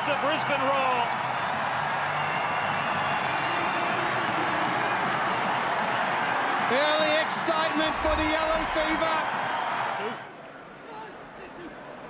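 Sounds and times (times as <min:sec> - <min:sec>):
stadium crowd cheering and applauding: 0:00.0 - 0:12.0.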